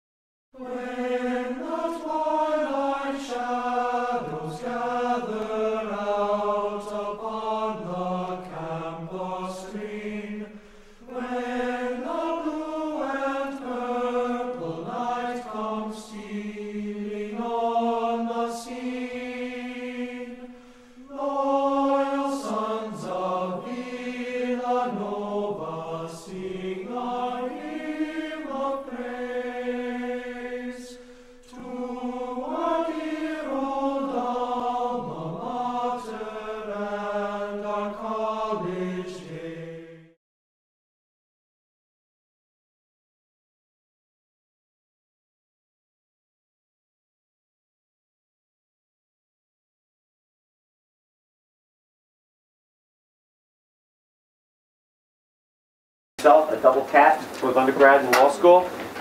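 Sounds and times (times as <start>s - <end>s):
voices singing chant: 0.6s - 40.2s, 56.2s - 59.0s.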